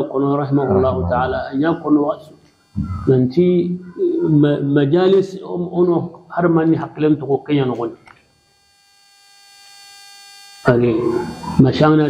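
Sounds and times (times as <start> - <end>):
faint electrical hum with whine: 0.0 - 12.0.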